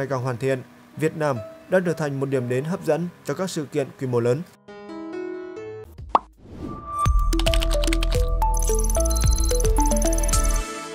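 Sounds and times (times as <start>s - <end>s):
outro music with deep bass: 6.0s - 10.8s.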